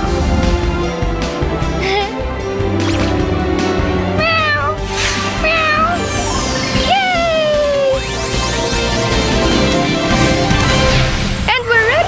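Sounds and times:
bright music: 0:00.0 - 0:12.0
cartoon cat meowing: 0:04.2 - 0:04.8, 0:05.4 - 0:06.1, 0:06.9 - 0:08.0.

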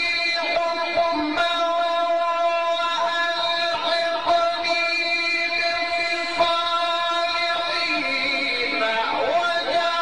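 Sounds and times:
man chanting a long high note: 0:00.0 - 0:10.0.

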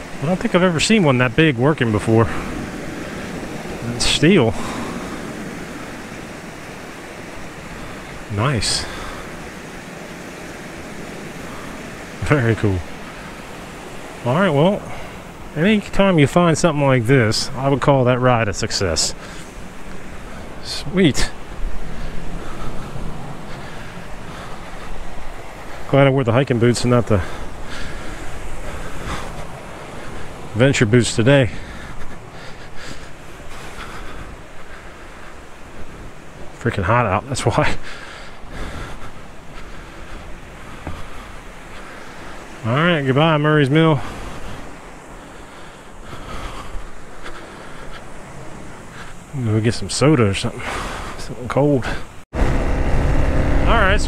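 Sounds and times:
water rushing over dam: 0:00.0 - 0:54.0
wind buffeting microphone: 0:00.0 - 0:54.0.

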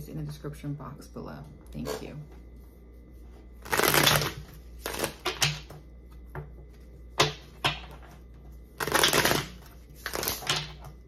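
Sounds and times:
cards shuffling: 0:03.6 - 0:05.5, 0:08.8 - 0:10.8.

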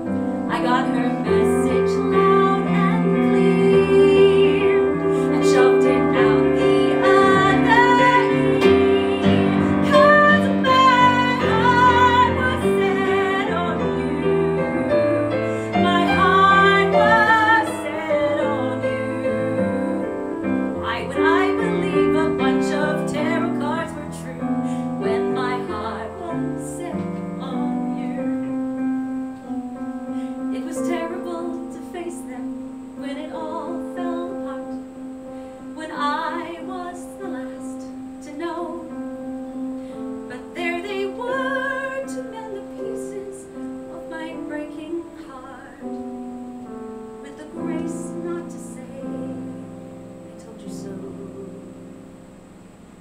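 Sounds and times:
woman singing with vibrato: 0:00.0 - 0:28.9, 0:29.5 - 0:46.1, 0:47.2 - 0:52.2
piano accompaniment: 0:00.0 - 0:53.0.

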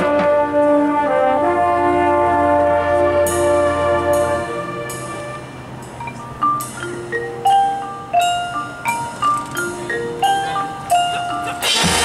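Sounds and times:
marching band holding loud chord: 0:00.0 - 0:06.0
mallet percussion ringing notes: 0:02.5 - 0:12.0.

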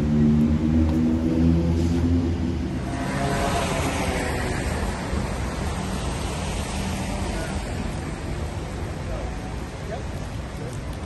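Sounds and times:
street traffic hiss: 0:00.0 - 0:11.0
vehicle engine hum: 0:00.0 - 0:11.0.

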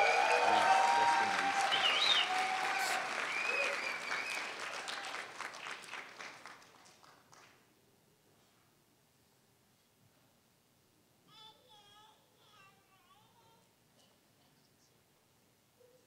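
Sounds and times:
voices cheering: 0:00.0 - 0:05.4
audience applauding: 0:00.0 - 0:07.6.

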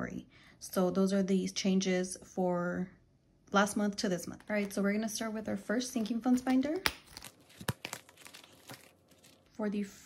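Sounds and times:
plastic envelope crinkling: 0:05.8 - 0:09.6.

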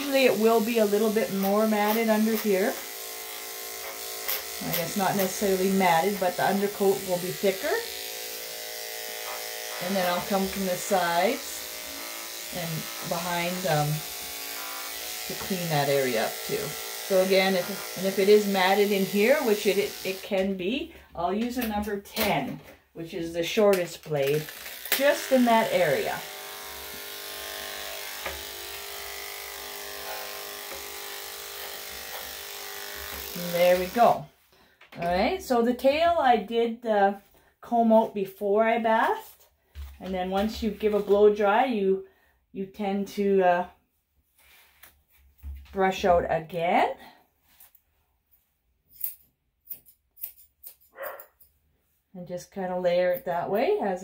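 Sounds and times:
electric clippers humming: 0:00.0 - 0:20.6, 0:24.1 - 0:34.2.

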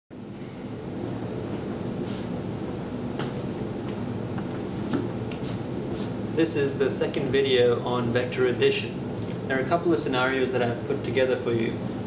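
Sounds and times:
room background rumble: 0:00.1 - 0:12.0.

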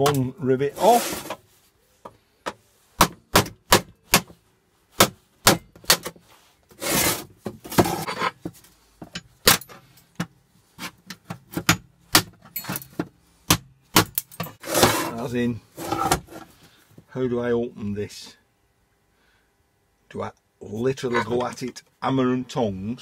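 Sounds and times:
metal rattling scrape: 0:14.5 - 0:16.5.

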